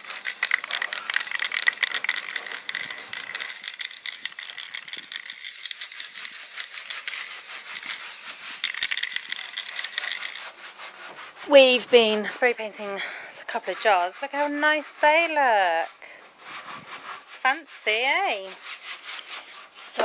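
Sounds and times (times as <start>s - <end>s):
spray paint hissing: 0.0s - 10.7s
spray can mixing ball rattling: 0.0s - 10.9s
hand sanding scrape: 0.0s - 20.0s.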